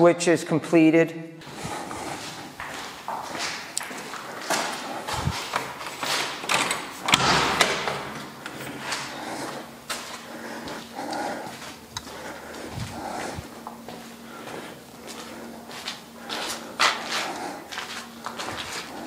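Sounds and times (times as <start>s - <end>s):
footsteps and camera handling: 1.4s - 6.6s.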